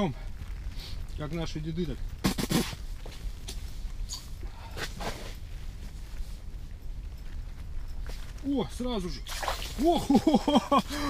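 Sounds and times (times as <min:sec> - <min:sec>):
low rumble: 0:00.0 - 0:11.0
clothing rustle: 0:00.2 - 0:11.0.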